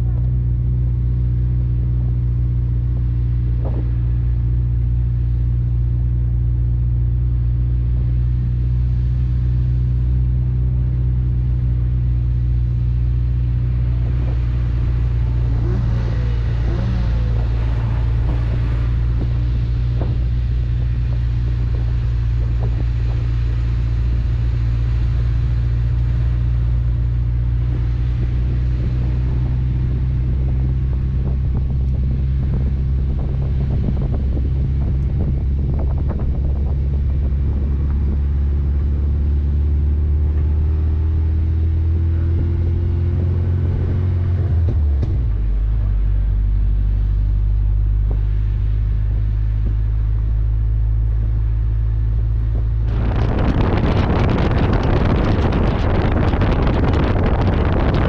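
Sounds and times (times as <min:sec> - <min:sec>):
car engine droning: 0:00.0 - 0:58.0.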